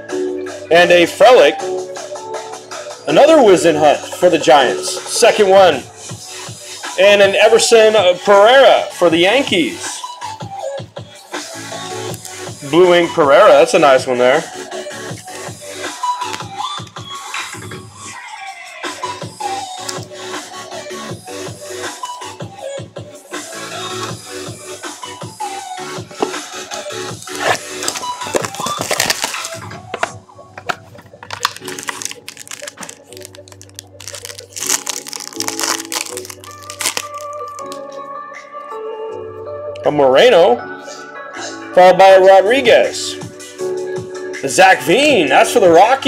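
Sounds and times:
background music: 0.0 - 46.0
cards clicking: 19.8 - 20.1, 26.2 - 37.8
plastic wrap crackling: 26.2 - 37.9.

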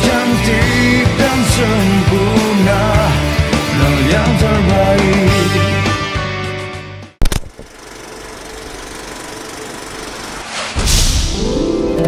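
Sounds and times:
sharp hit: 10.5 - 11.8.

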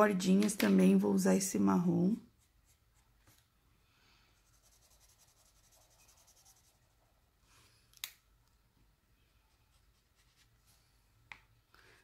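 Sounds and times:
marker scratching on paper: 4.4 - 6.9.

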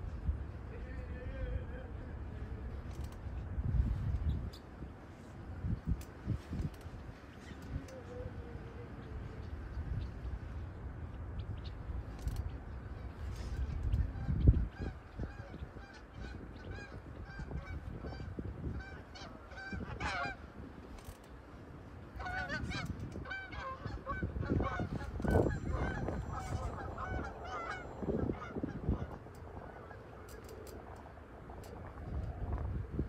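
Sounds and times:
birds calling: 7.1 - 20.6, 22.1 - 30.8.

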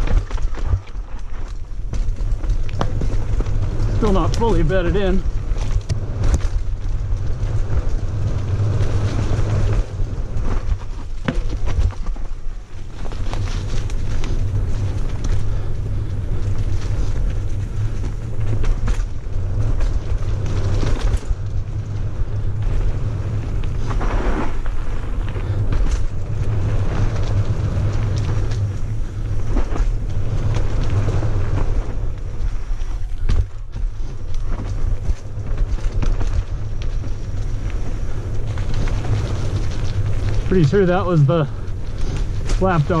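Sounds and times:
bike clattering over bumps: 0.0 - 43.0
tyres running over dirt: 0.0 - 43.0
wind rumble: 0.0 - 43.0.

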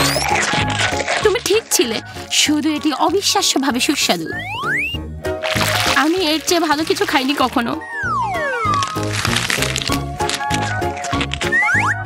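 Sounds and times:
falling whistle sound effect: 4.3 - 5.0, 7.8 - 9.1, 11.5 - 12.0
hard candy crunching: 5.5 - 11.7.

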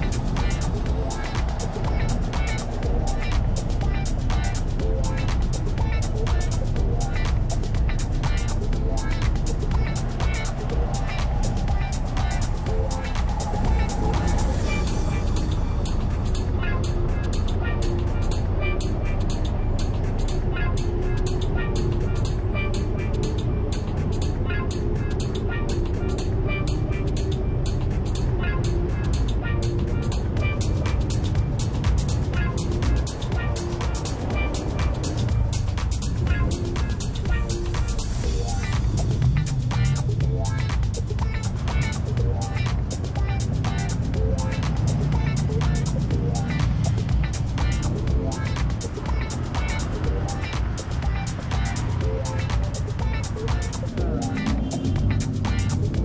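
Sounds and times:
music with steady beat: 0.0 - 56.0
road traffic noise: 0.0 - 56.0.

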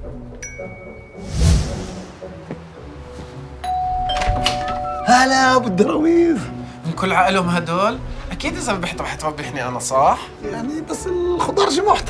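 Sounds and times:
two-note doorbell chime: 3.6 - 5.7.

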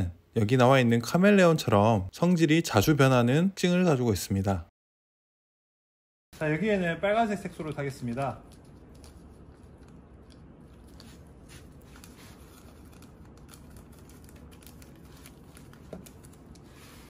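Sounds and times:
small clicks and crinkles: 7.5 - 16.8.

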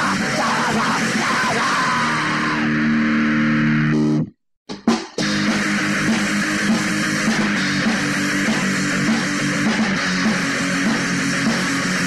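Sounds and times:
punk band playing: 0.0 - 3.4, 4.0 - 12.0
ringing distorted guitar chord: 2.1 - 4.3.

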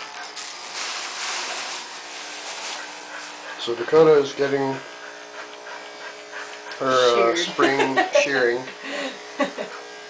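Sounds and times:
electric dog clippers buzzing: 0.0 - 10.0.

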